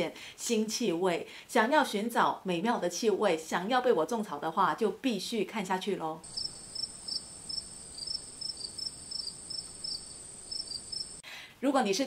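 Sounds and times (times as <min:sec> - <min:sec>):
insect chirps: 0:06.2 - 0:11.2
insects trilling: 0:06.2 - 0:11.2.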